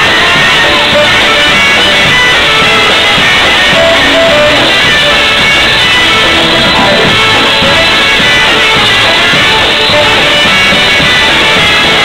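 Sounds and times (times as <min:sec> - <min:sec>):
polka band playing: 0:00.0 - 0:12.0.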